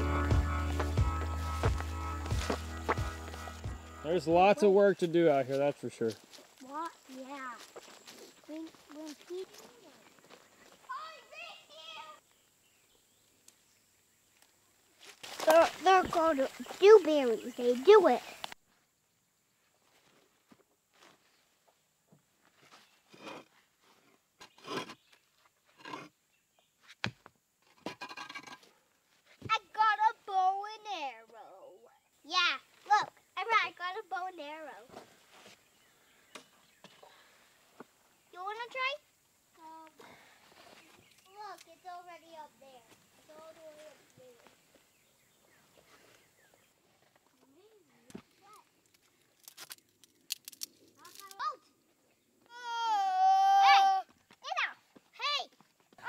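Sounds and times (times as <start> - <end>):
child calling and shouting: 6.6 - 7.8, 8.4 - 10.1, 10.8 - 12.2, 15.4 - 18.4, 29.4 - 35.0, 38.3 - 39.0, 39.6 - 40.0, 41.3 - 44.5, 47.4 - 48.7, 51.0 - 51.8, 52.4 - 55.6.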